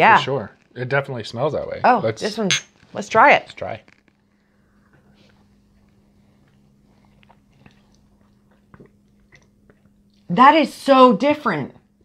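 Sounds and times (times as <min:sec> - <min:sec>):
low steady hum: 0:00.0 - 0:12.0
sipping and swallowing: 0:06.5 - 0:10.3.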